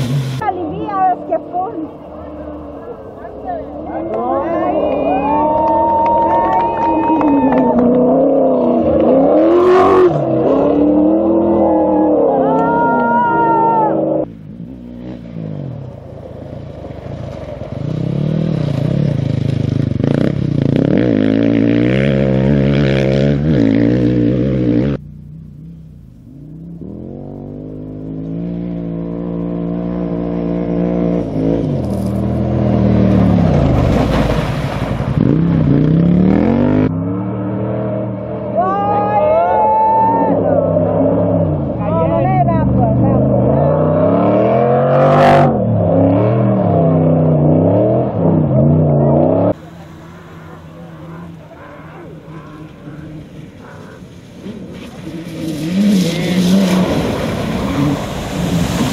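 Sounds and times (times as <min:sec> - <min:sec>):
rally engines revving: 0:00.0 - 0:58.9.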